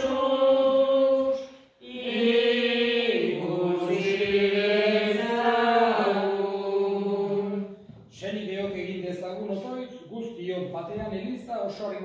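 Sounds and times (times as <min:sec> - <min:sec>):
slow hymn singing: 0:00.0 - 0:08.8.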